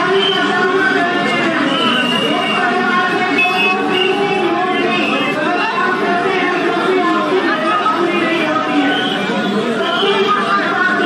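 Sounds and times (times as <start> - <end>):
street noise: 0.0 - 11.0
woman speaking over loudspeaker: 0.0 - 11.0.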